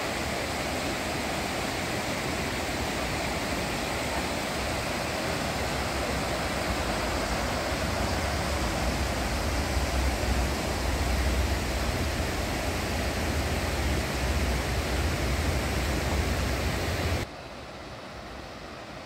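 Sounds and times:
river rushing over rocks: 0.0 - 17.3.

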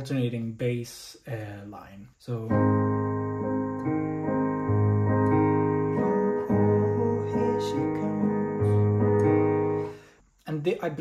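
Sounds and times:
digital piano playing chords: 2.3 - 10.1.

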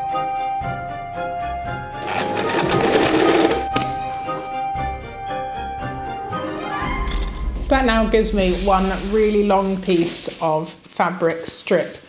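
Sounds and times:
background music: 0.0 - 10.8
sewing machine stitching: 2.0 - 4.0.

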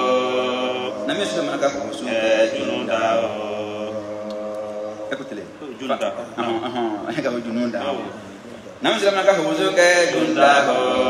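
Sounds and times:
man chanting into microphone: 0.8 - 6.2.

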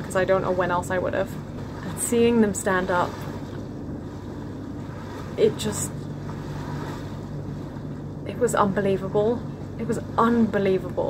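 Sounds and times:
ship engine low hum: 0.0 - 11.0.

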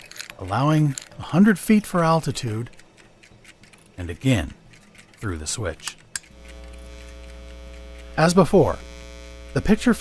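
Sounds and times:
electrical hum with low buzz: 6.3 - 10.0.

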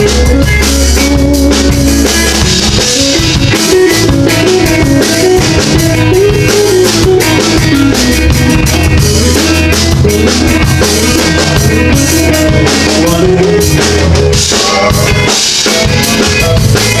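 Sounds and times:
drum kit steady beat: 0.0 - 17.0
electric guitars: 0.0 - 17.0.

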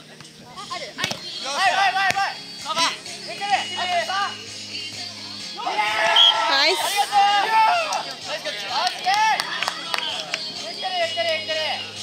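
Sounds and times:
players shouting and calling: 0.5 - 12.0
hand slapping a volleyball: 1.0 - 1.2, 2.0 - 2.3.

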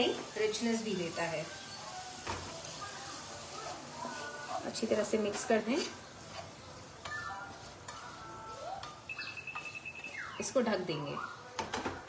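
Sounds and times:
wooden spatula scraping frying pan: 2.1 - 9.8
thin steady high tone: 8.1 - 11.4.

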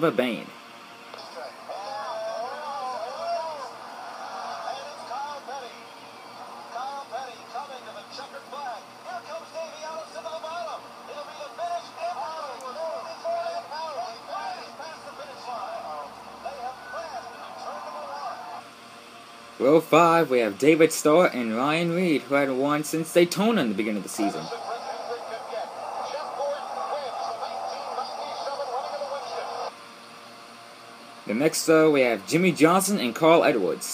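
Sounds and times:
commentators talking on television: 1.1 - 18.6, 19.6 - 29.7
race cars engine noise: 23.8 - 29.7.

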